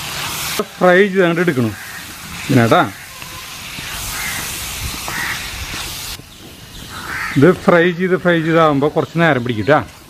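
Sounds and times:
meat sizzling in a wok: 0.0 - 8.1.

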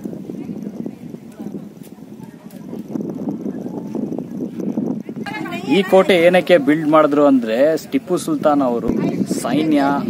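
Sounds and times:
background voices talking: 0.0 - 10.0
narration: 5.3 - 10.0.

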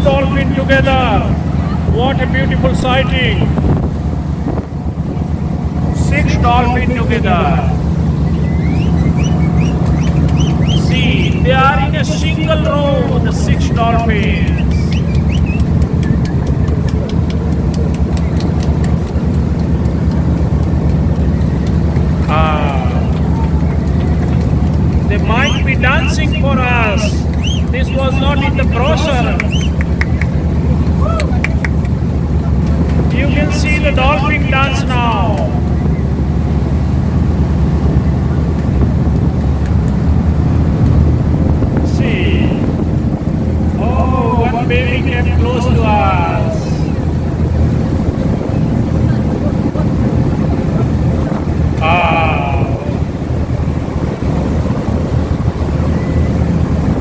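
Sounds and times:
boat motor running: 0.0 - 57.0
wind buffeting microphone: 0.0 - 57.0.

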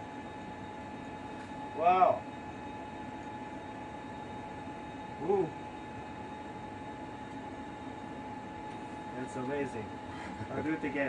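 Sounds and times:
constant high whine: 0.0 - 11.0
ventilation fans humming: 0.0 - 11.0.

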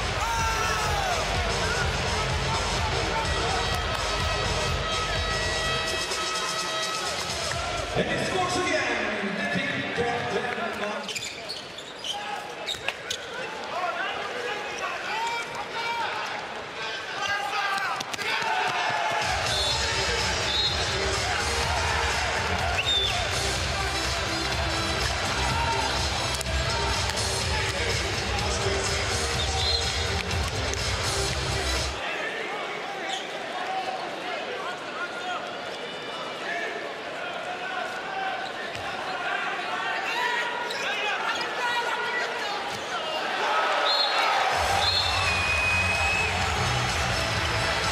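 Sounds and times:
deep bass music over speakers: 0.0 - 5.8, 19.8 - 31.9
crowd shouting and chanting: 0.0 - 11.0, 12.0 - 47.9.

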